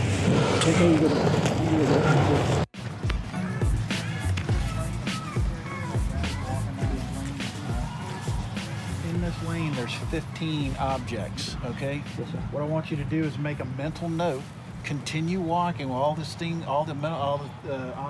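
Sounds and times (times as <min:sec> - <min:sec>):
loud rush of outdoor noise: 0:00.0 - 0:18.0
music with a beat: 0:02.8 - 0:12.5
indistinct voices: 0:03.3 - 0:12.7.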